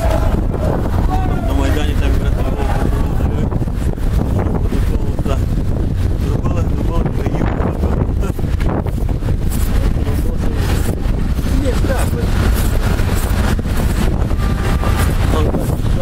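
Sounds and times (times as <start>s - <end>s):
muffled voices: 0.0s - 16.0s
wind rumble: 0.0s - 16.0s
microphone rubbing on clothing: 3.2s - 16.0s.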